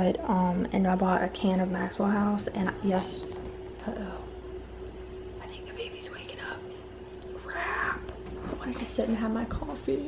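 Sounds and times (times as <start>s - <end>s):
steady low hum: 0.0s - 10.0s
woman whispering: 5.4s - 6.8s.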